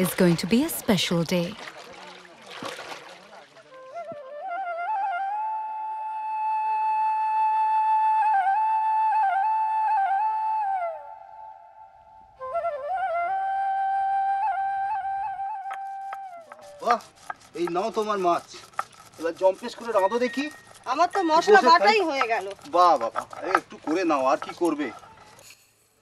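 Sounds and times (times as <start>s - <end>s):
water splashing: 0.0s - 4.1s, 16.5s - 25.4s
solo flute melody: 3.5s - 17.2s, 19.5s - 22.2s.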